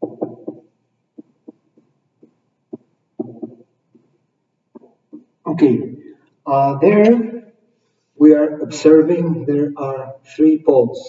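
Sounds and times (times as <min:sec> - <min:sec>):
marker writing on whiteboard: 0:00.0 - 0:04.1.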